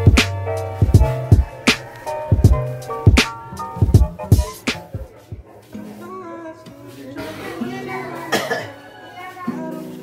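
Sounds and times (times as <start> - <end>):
background music: 0.0 - 10.0
woman coughing: 8.2 - 8.8.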